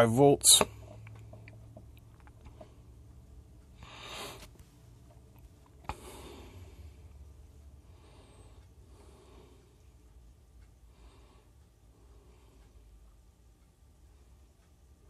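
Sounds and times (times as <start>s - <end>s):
low steady hum: 0.0s - 15.0s
soft breathing close to microphone: 3.7s - 4.7s, 5.8s - 10.1s, 10.7s - 13.1s.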